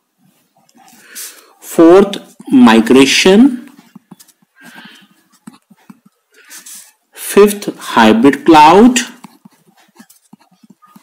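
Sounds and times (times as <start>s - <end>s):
pen scratching on paper: 3.7s - 7.1s, 9.0s - 11.0s.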